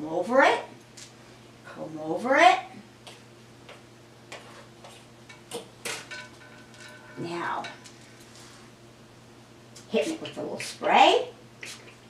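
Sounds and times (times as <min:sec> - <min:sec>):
comb scratching through hair: 0:11.6 - 0:12.0.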